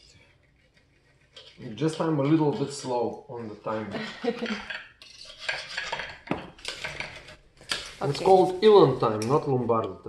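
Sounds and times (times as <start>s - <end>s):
knife and fork scraping a plate: 0.0s - 3.0s, 4.0s - 9.4s.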